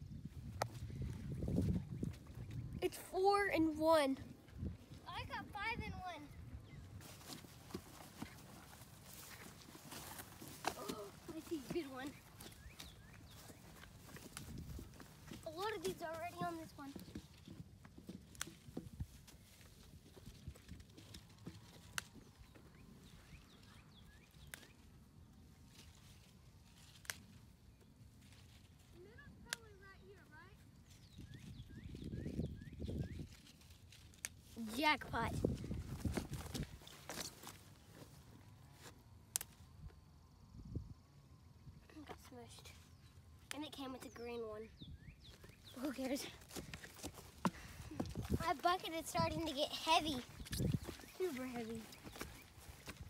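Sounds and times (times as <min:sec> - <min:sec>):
strawberries picked by hand: 0:00.0 - 0:53.0
voices: 0:10.6 - 0:12.4, 0:15.4 - 0:17.1, 0:45.7 - 0:46.5, 0:48.3 - 0:52.3.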